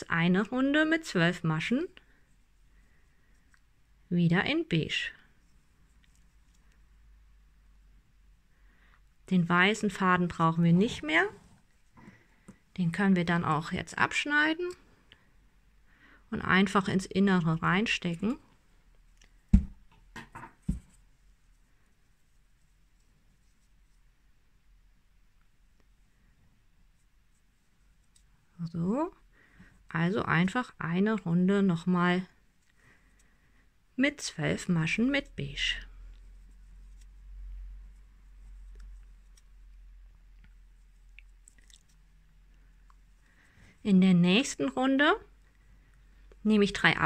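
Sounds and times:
crochet hook scratching yarn: 34.7 - 42.0.

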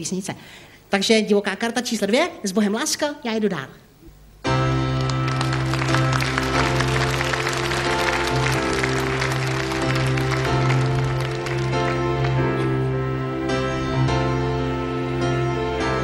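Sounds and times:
synthesizer chords: 4.4 - 16.0
audience applauding: 4.8 - 12.9.

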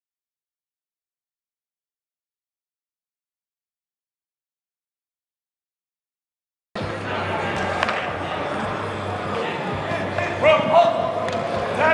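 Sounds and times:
background chatter: 6.8 - 11.9.

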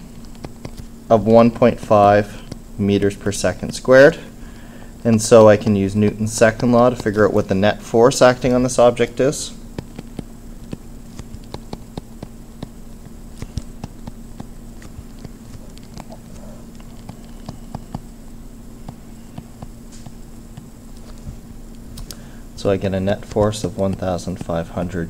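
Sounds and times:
low hum: 0.0 - 25.0
stylus tapping on screen: 9.7 - 16.2, 16.8 - 18.1, 18.8 - 21.1.

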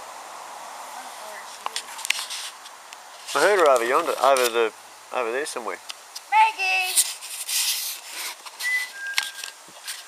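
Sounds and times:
bird whistled note: 8.6 - 9.4.

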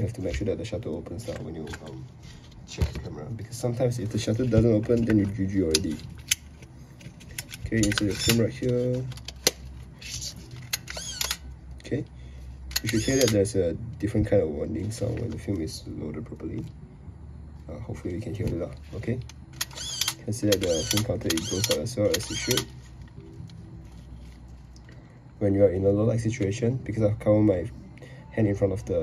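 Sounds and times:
low room hum: 0.0 - 29.0
camera plastic clicks: 7.3 - 9.6, 10.5 - 11.5, 12.7 - 13.5, 19.2 - 22.7.

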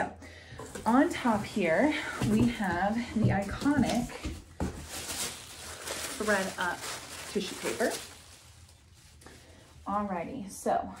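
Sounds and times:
box handling noise: 0.6 - 8.2
woman speaking: 0.9 - 4.3, 6.1 - 8.0, 9.9 - 11.0.

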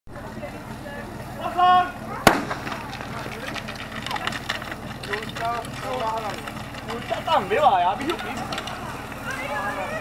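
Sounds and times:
spectator chatter: 0.1 - 10.0
starting pistol shot: 2.2 - 3.4.

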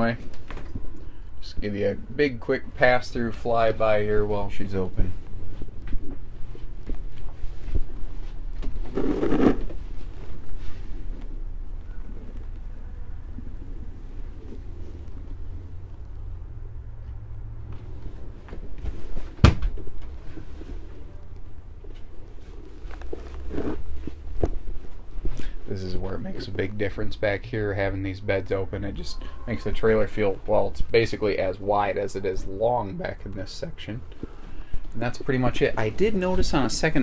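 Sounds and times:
low steady rumble: 0.0 - 37.0.

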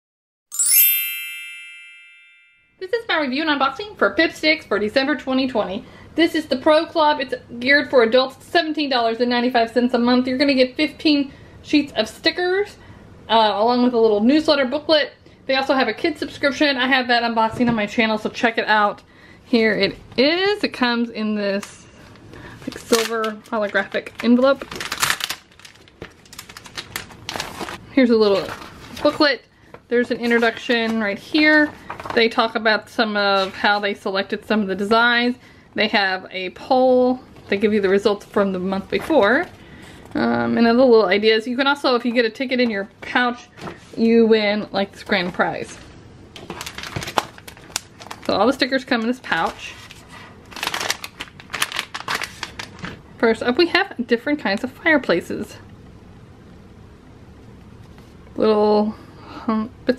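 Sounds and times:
bright sparkly chime: 0.5 - 2.8
foil envelope crinkling: 22.4 - 29.2, 46.4 - 53.0
paper rustling: 22.6 - 29.2, 31.6 - 32.4, 46.4 - 48.4, 49.3 - 53.0.

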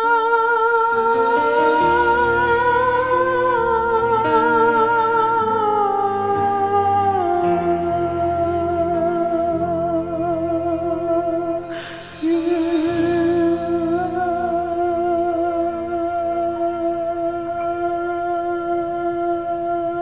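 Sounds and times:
backing track music: 0.0 - 20.0
person singing long notes with vibrato: 0.0 - 20.0.

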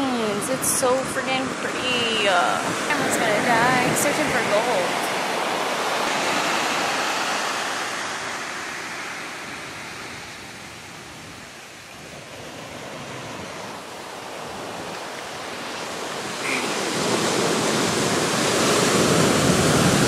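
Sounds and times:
ocean surf on beach: 0.0 - 20.0.

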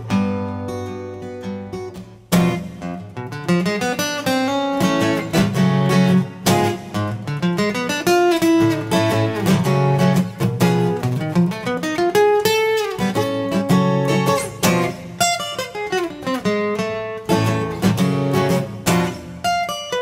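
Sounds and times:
acoustic guitar picking: 0.0 - 20.0.

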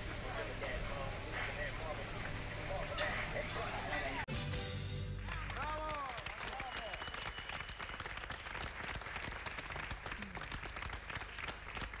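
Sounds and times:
crowd applause: 5.2 - 12.0.

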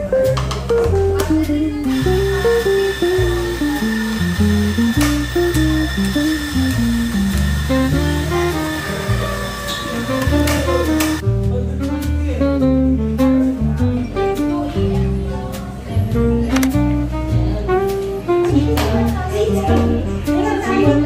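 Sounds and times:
acoustic guitar music: 0.0 - 21.0
coffee grinder humming: 1.9 - 11.2.

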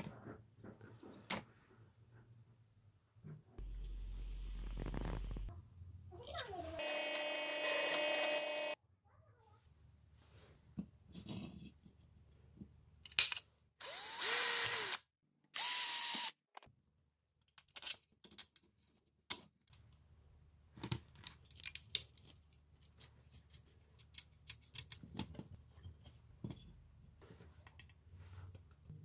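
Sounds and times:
cordless drill drilling aluminium: 6.8 - 8.8, 13.8 - 16.3
drill press running: 6.8 - 8.8.

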